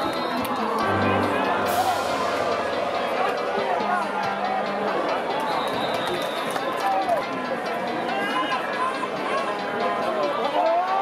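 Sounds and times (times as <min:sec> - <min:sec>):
crowd hubbub: 0:00.0 - 0:11.0
crowd shouting and cheering: 0:00.0 - 0:11.0.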